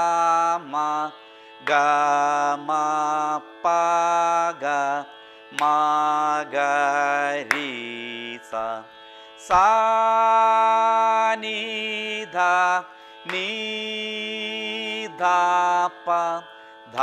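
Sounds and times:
steady drone: 0:00.0 - 0:17.0
man singing vocal exercise: 0:09.4 - 0:17.0.

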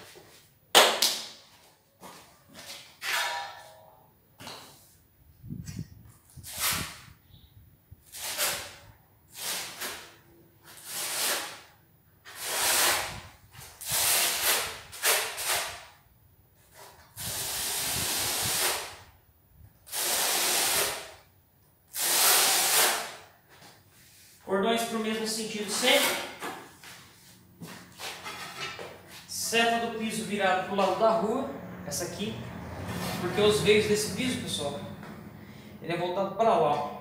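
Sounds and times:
trowel scraping mortar on concrete: 0:06.3 - 0:07.1, 0:08.1 - 0:10.1, 0:10.7 - 0:15.9, 0:19.9 - 0:21.2, 0:22.0 - 0:23.2, 0:25.6 - 0:30.2.

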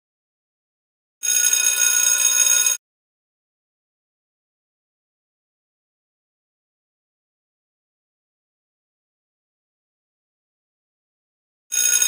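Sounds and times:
bell-like ringing signal: 0:01.3 - 0:02.8.

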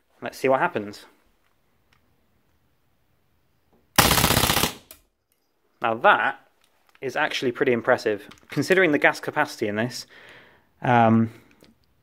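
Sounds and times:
airsoft pistol full-auto burst: 0:04.0 - 0:05.0.

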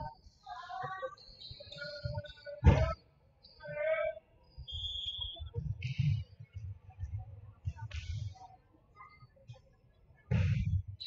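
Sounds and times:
thuds: 0:02.0 - 0:03.0, 0:10.3 - 0:11.0
high whistle tone: 0:04.6 - 0:05.5.

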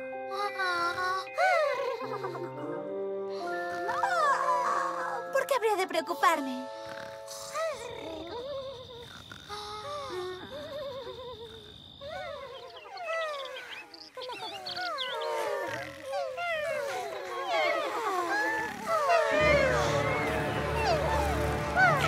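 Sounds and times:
cartoon creatures chirping: 0:06.9 - 0:22.0.

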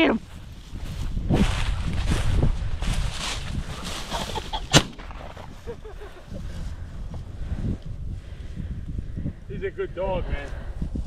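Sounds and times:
footsteps in dry grass: 0:00.1 - 0:08.2
shotgun shot: 0:04.7 - 0:05.3.

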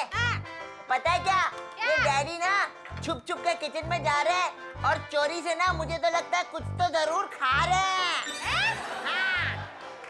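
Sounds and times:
chime-like tones sweeping in pitch: 0:08.2 - 0:09.0.

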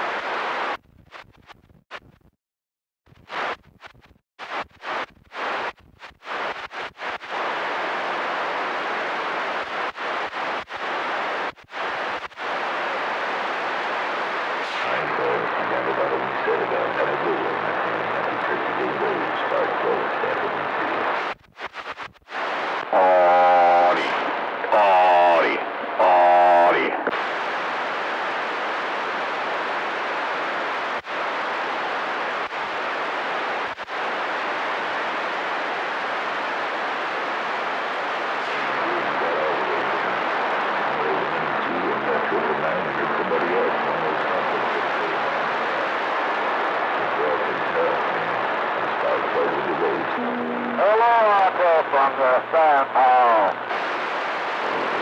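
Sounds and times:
faint wavering radio signals: 0:00.0 - 0:02.3, 0:03.1 - 0:55.0
radio static hiss: 0:00.0 - 0:02.3, 0:03.1 - 0:55.0.

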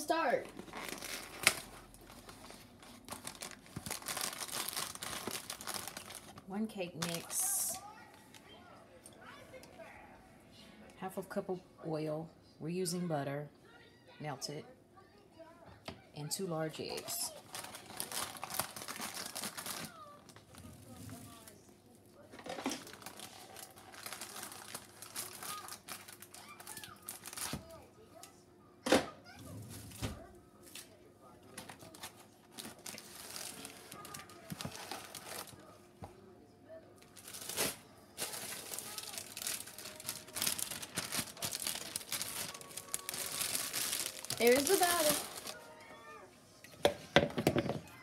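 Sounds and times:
plastic bag crinkling: 0:00.1 - 0:08.4, 0:16.8 - 0:21.6, 0:22.4 - 0:27.7, 0:31.7 - 0:35.7, 0:37.0 - 0:45.8.

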